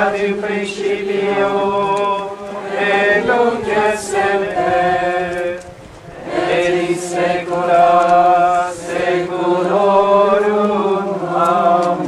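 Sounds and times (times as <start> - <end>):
procession singing a slow hymn: 0.0 - 12.0.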